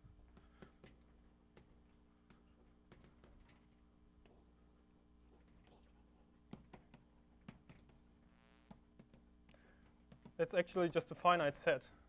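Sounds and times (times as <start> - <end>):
chalk writing on a blackboard: 0.0 - 3.4, 4.2 - 11.0
faint room hum: 0.0 - 12.0.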